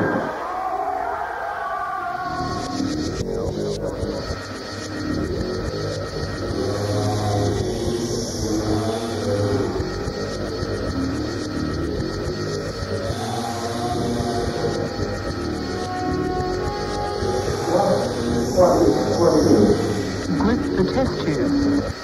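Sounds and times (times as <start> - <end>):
experimental electronic music: 14.3 - 22.0.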